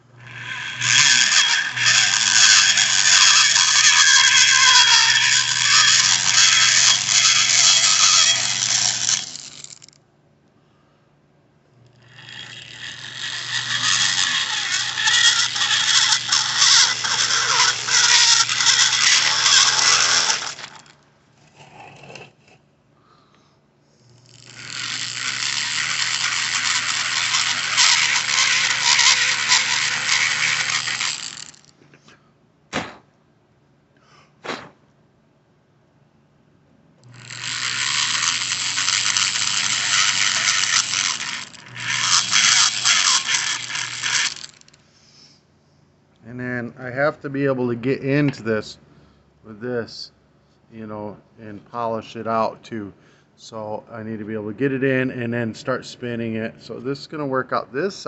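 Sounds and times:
rotary tool grinding metal: 0.0 - 10.0, 11.8 - 22.4, 24.0 - 31.7, 37.0 - 44.8.

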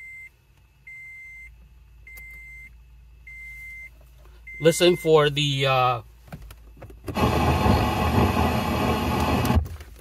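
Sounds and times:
electronic beeps through speakers: 0.9 - 5.2.

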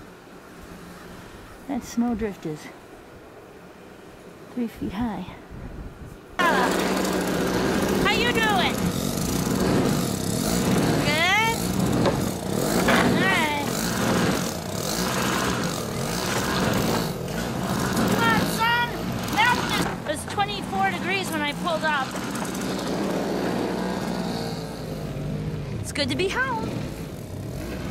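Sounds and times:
snowblower engine running: 6.4 - 27.9.

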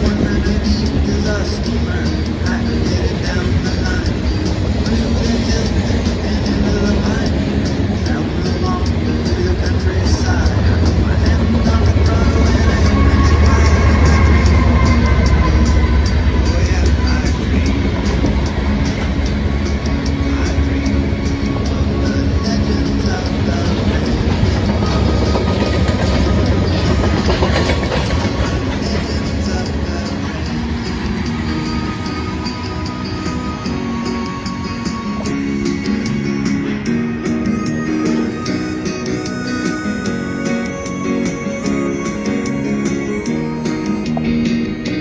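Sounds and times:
train wheels rumbling on rail: 0.0 - 45.0
wheels squealing: 0.0 - 45.0
wheel clicks over rail joints: 23.3 - 30.2.

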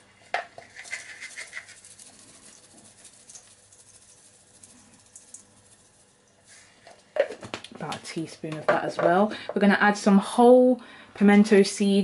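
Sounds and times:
salt granules pattering from shaker: 0.6 - 6.8.

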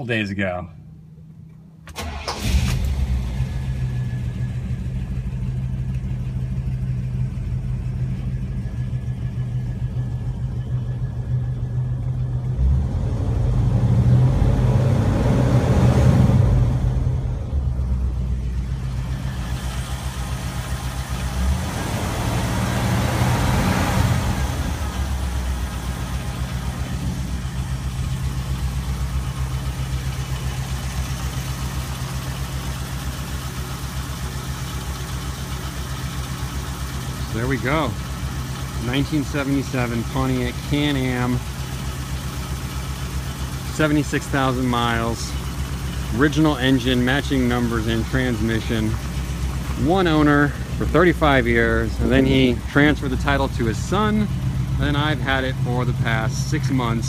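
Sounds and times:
car engine idling: 0.0 - 57.0
car engine starting: 0.1 - 57.0
car engine revving: 2.0 - 57.0.

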